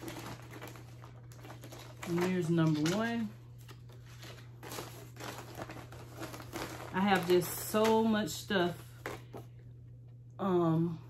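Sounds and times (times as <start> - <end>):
paper cards crinkling: 0.0 - 8.1
plastic bag rustling: 0.0 - 9.5.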